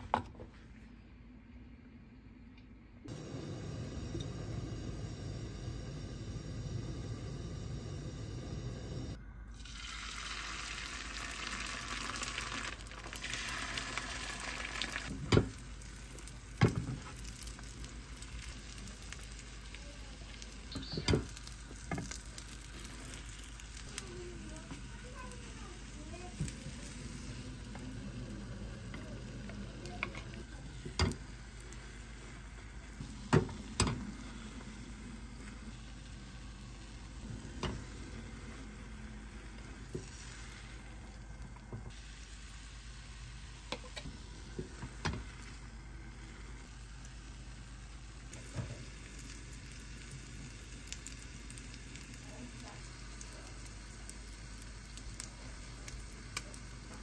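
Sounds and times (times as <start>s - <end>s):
egg sizzling in a pan: 3.1s - 57.0s.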